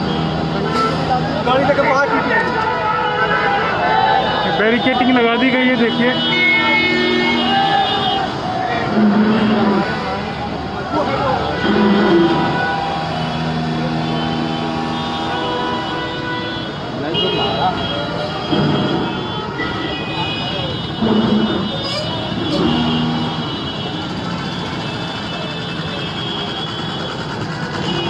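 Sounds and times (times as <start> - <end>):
people talking and calling out: 0.0 - 15.8, 16.6 - 28.0
road traffic: 0.0 - 28.0.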